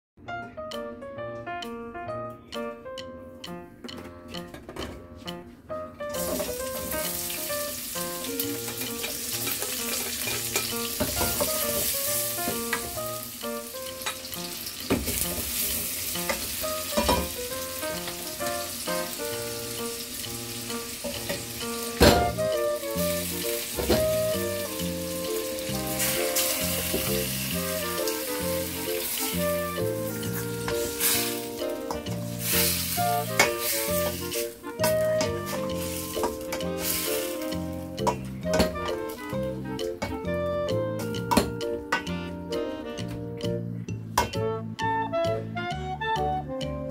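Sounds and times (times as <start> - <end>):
background music: 0.2 - 46.9
food sizzling in hot oil: 6.1 - 40.0
spoon stirring in pot: 8.6 - 10.8.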